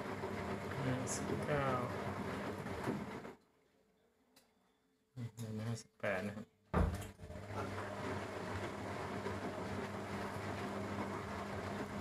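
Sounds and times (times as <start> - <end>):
washing machine running: 0.0 - 3.4, 6.8 - 12.0.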